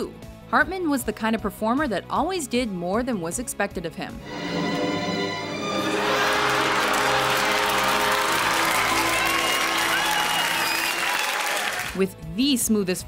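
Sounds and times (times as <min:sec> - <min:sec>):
music playing: 0:03.8 - 0:13.0
audience applauding: 0:05.6 - 0:12.0.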